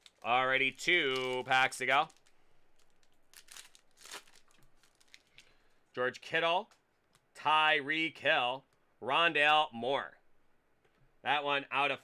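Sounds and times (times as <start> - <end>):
foil wrapper tearing and crinkling: 0.0 - 5.5.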